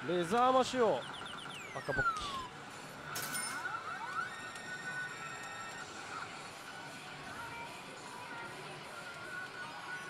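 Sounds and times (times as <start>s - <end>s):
pachinko parlour din: 0.1s - 6.4s
slot machine electronic effects: 0.6s - 6.1s
slot machine music: 0.7s - 6.1s.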